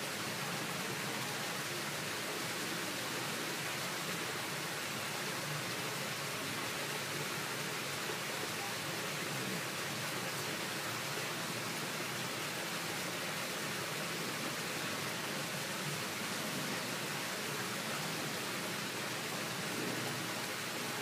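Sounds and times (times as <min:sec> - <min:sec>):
water flowing in a pool: 0:00.0 - 0:21.0.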